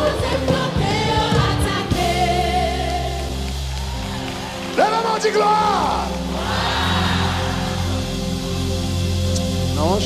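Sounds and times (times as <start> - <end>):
voices singing: 0.0 - 3.5.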